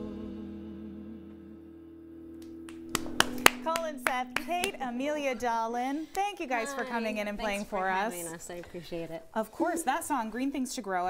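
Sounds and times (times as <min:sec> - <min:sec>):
acoustic band chord ringing: 0:00.0 - 0:08.1
sharp hand claps: 0:02.4 - 0:04.9
person speaking: 0:03.5 - 0:10.6.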